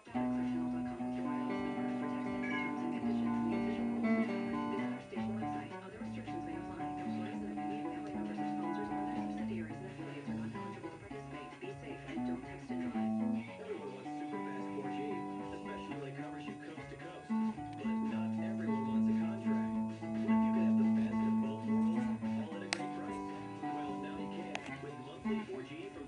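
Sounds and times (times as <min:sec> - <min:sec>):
electric guitar picking: 0:00.0 - 0:26.0.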